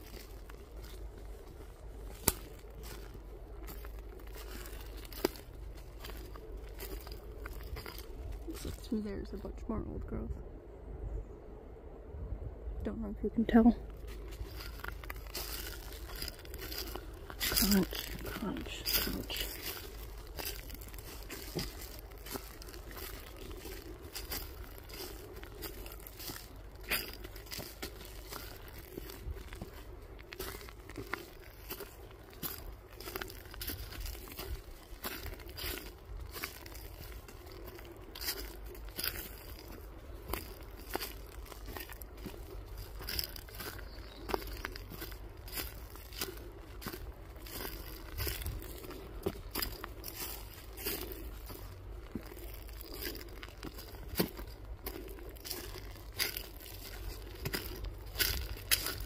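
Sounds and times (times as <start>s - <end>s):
footsteps crunching on leaves: 0.0s - 9.4s, 13.8s - 59.0s.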